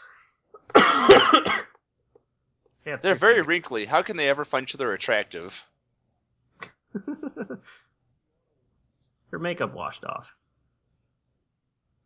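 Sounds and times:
person coughing: 0.7s - 1.7s.

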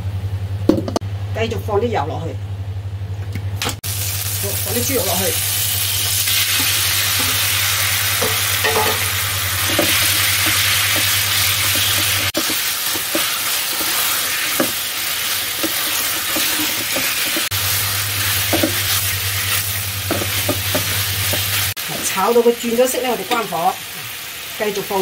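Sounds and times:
low steady hum: 0.0s - 22.6s
pork sizzling in hot oil: 3.8s - 25.0s
wooden spatula scraping a pan: 9.7s - 17.5s.

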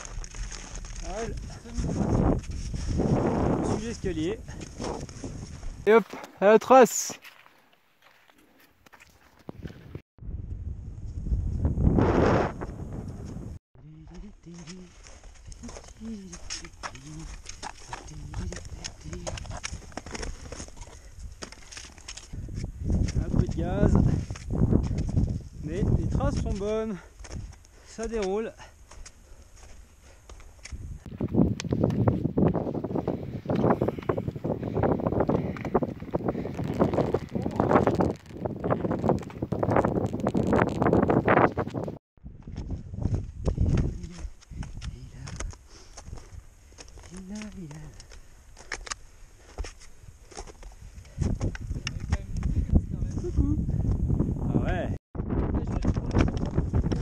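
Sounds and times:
wind gust on microphone: 1.0s - 5.9s, 9.6s - 13.6s, 22.3s - 26.6s, 30.7s - 45.5s, 50.8s - 57.0s.

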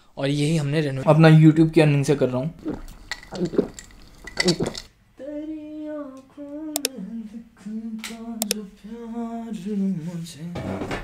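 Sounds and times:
dishes and cutlery clinking: 2.6s - 4.9s
person singing long notes: 5.2s - 10.5s
sharp clicks: 8.0s - 8.6s.

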